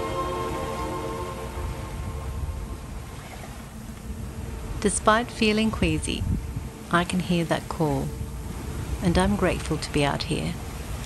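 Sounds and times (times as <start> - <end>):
background music: 0.0 - 10.7
water rushing along hull: 0.0 - 11.0
wind buffeting microphone: 0.0 - 11.0.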